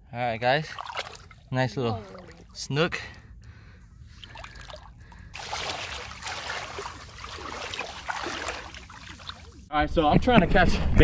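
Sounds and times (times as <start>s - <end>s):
shallow water splashing and fizzing: 0.6s - 2.6s, 4.1s - 9.7s.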